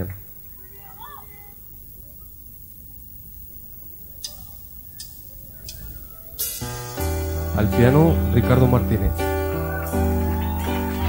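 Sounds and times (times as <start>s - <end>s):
faint clicks: 0.0s - 6.8s
low steady hum: 0.0s - 11.0s
keyboard piano chord: 6.5s - 11.0s.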